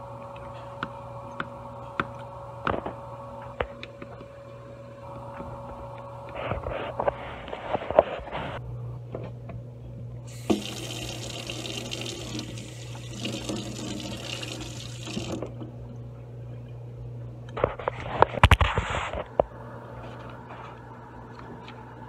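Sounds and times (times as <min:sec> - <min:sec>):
tap water running into sink: 0:10.3 - 0:15.5.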